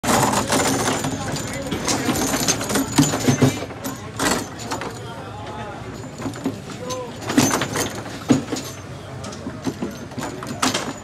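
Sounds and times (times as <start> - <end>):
people talking: 0.1 - 7.6, 8.2 - 11.0.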